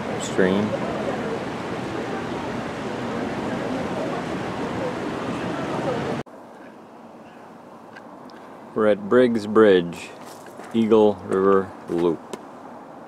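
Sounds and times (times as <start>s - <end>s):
water rushing in creek: 0.0s - 6.2s
faint distant voices: 0.0s - 7.9s
quiet outdoor ambience: 0.0s - 13.0s.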